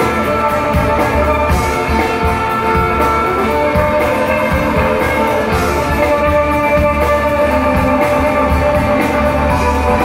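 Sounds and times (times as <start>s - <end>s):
live folk-rock band playing: 0.0s - 10.0s.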